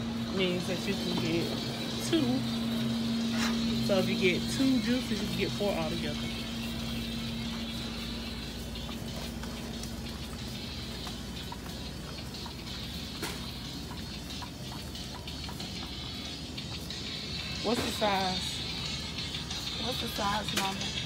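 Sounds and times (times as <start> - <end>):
faint music: 0.0 - 21.0
steady background hum: 0.0 - 21.0.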